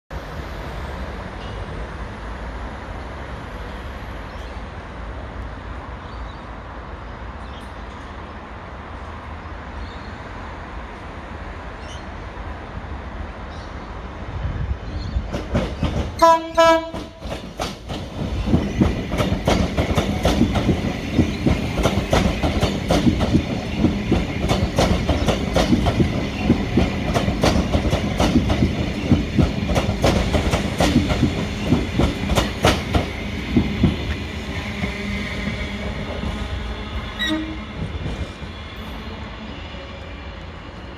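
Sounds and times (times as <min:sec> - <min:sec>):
train rumble: 0:00.2 - 0:40.9.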